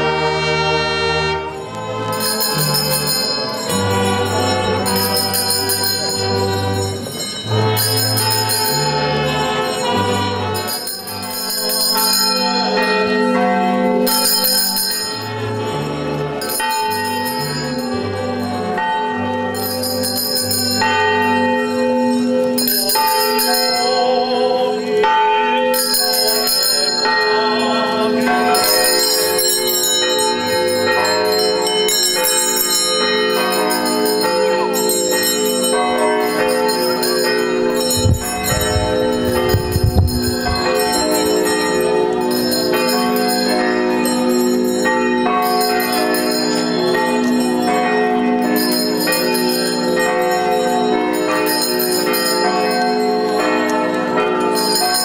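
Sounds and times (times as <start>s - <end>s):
hand bells ringing: 1.6s - 55.0s
low thumps: 37.9s - 41.1s.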